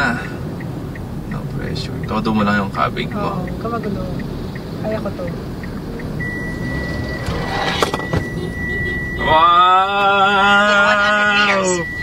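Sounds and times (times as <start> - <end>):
parking sensor steady beep: 0.4 - 12.0.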